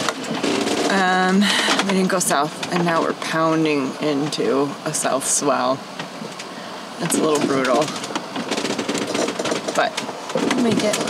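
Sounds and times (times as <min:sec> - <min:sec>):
boat cabin creaking and crackling: 0:00.0 - 0:11.0.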